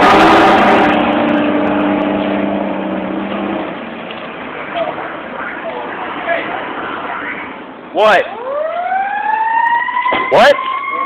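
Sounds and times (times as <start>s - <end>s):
faint road rumble: 0.0s - 11.0s
fire engine pulling away: 0.0s - 11.0s.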